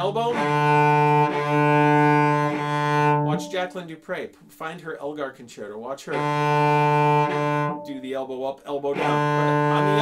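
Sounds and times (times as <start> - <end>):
cello bowed low note: 0.0 - 3.7, 6.1 - 10.0.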